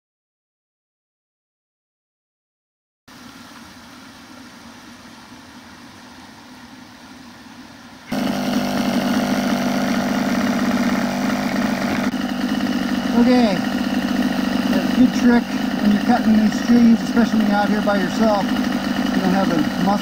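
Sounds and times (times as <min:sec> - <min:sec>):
small petrol engine idling: 0:03.1 - 0:20.0.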